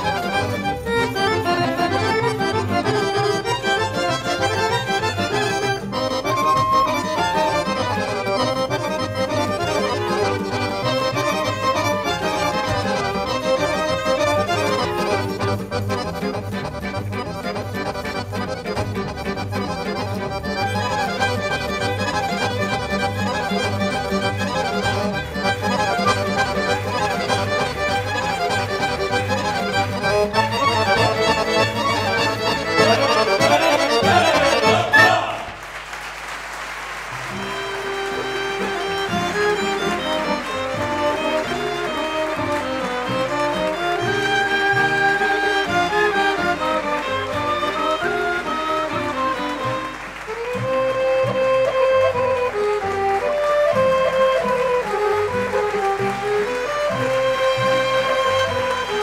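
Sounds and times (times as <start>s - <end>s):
accordion folk dance music: 0.0s - 59.0s.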